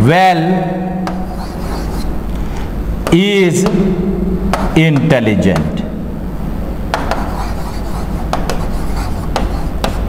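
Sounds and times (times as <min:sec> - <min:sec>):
low room hum: 0:00.0 - 0:10.0
marker writing on whiteboard: 0:01.0 - 0:02.2, 0:03.0 - 0:03.9, 0:04.5 - 0:05.9, 0:06.9 - 0:10.0.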